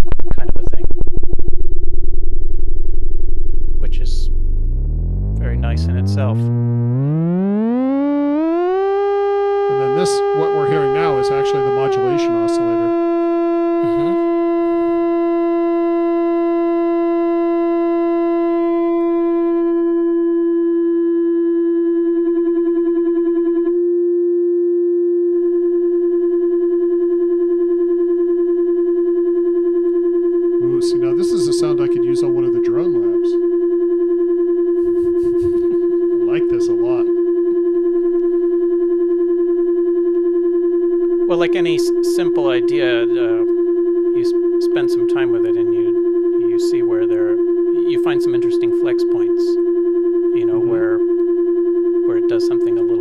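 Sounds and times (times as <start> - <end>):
synthesizer oscillator steady tone: 0.0 - 53.0.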